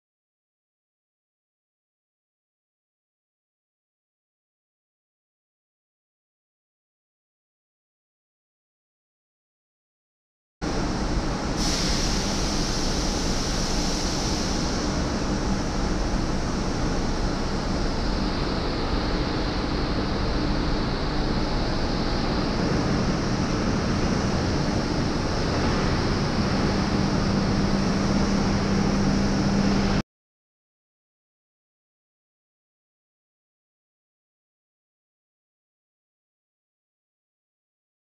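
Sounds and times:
low machine hum: 10.6 - 30.0
rushing hiss: 11.5 - 15.5.

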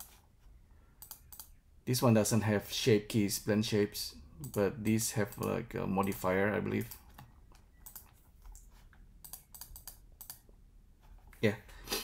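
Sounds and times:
keyboard and mouse clicking: 1.0 - 1.6, 4.4 - 10.5.

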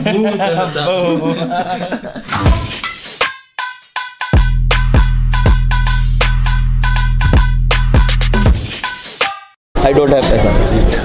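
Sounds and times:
music with ringing tones and beats: 2.3 - 9.6.

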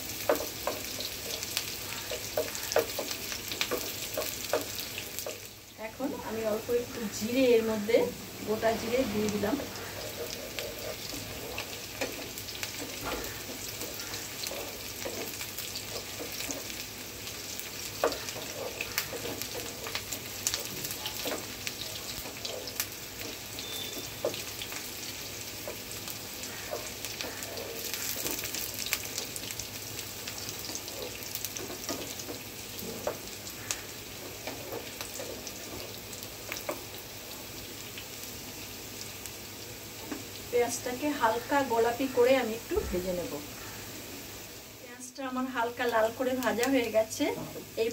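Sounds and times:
oil crackling and popping: 0.0 - 5.6, 9.7 - 40.6
onion sizzling in oil: 0.0 - 47.9.

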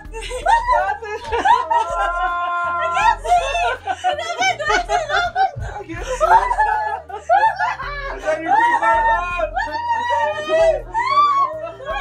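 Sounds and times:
woman laughing: 0.0 - 12.0.

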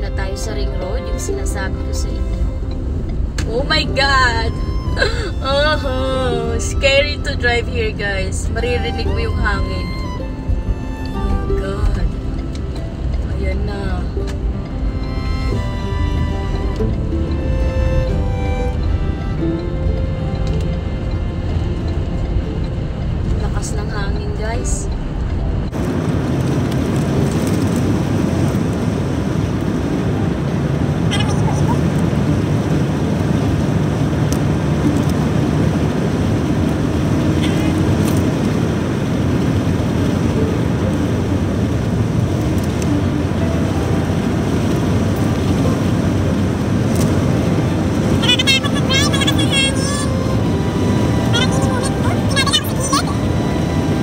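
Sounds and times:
wind and road noise in car: 0.0 - 54.0.

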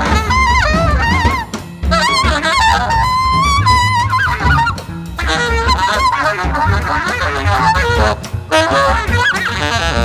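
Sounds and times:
drums: 0.0 - 10.0
saxophone playing: 0.0 - 10.0
upright bass: 0.0 - 10.0.

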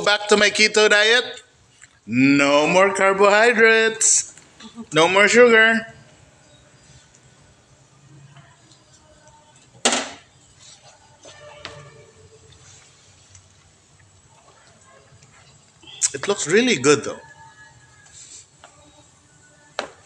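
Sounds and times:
stovetop cooking hiss: 12.3 - 20.0.

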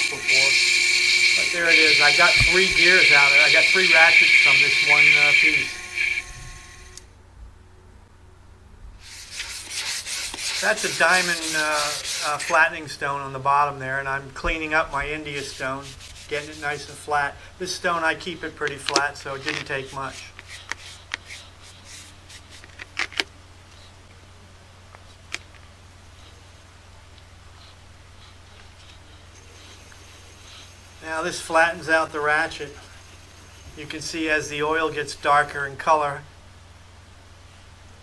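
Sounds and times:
steady low hum: 0.0 - 38.0
stone rubbing on flattening plate: 9.0 - 12.6, 15.3 - 17.0.

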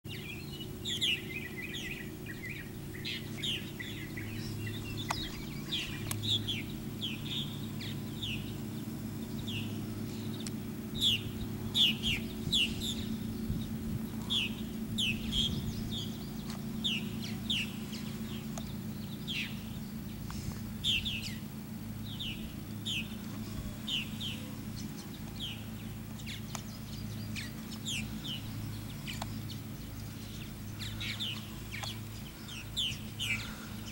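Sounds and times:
birds chirping: 0.0 - 33.9
low steady hum: 0.1 - 33.9
sharp clicks: 5.0 - 6.4, 31.3 - 32.2.

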